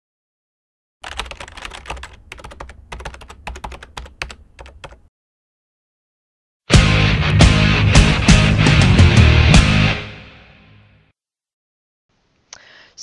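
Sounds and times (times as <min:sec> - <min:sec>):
computer keyboard typing: 0:01.0 - 0:05.1.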